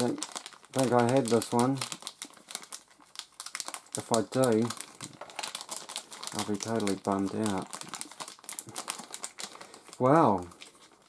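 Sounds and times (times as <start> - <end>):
foil bag crinkling: 0.0 - 11.0.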